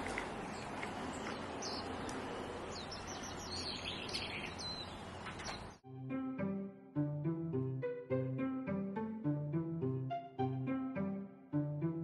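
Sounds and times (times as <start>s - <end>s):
small birds chirping: 0.0s - 5.8s
outdoor background hiss: 0.0s - 7.8s.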